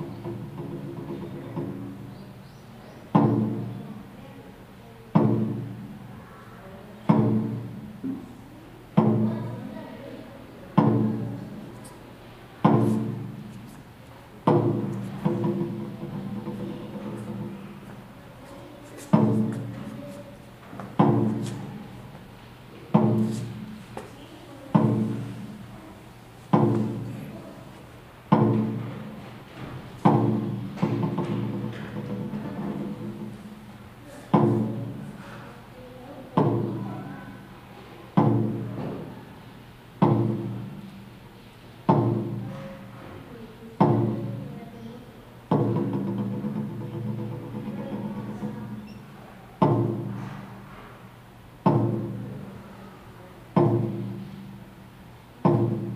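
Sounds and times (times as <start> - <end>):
taiko drum beats: 0.0 - 2.1, 3.1 - 4.0, 5.1 - 6.0, 7.1 - 8.3, 8.9 - 9.8, 10.7 - 11.7, 12.6 - 13.5, 14.3 - 18.2, 19.1 - 20.0, 20.8 - 22.2, 22.9 - 23.9, 24.7 - 25.8, 26.5 - 27.5, 28.3 - 35.4, 36.4 - 37.4, 38.1 - 39.0, 40.0 - 40.9, 41.8 - 42.9, 43.8 - 44.5, 45.5 - 50.7, 51.6 - 52.6, 53.5 - 54.8, 55.4 - 55.9.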